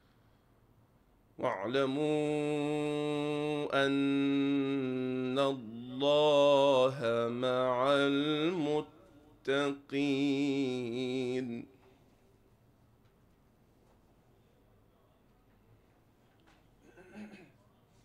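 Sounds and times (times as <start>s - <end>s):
man reciting melodically: 1.4s - 12.0s.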